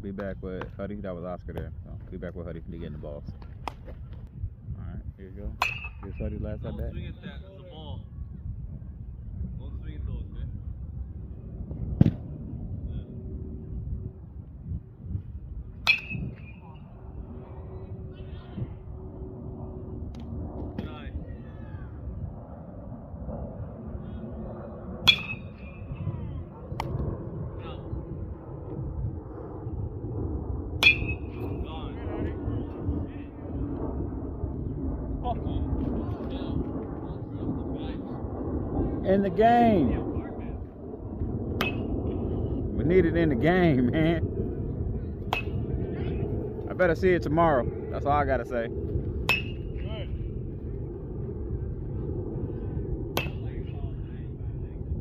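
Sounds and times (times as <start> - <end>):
low background rumble: 0.0 - 55.0
metal bat pinging ball: 5.6 - 6.1, 15.8 - 16.6, 25.0 - 25.7, 30.8 - 31.4, 41.6 - 41.9, 49.2 - 49.6, 53.2 - 53.5.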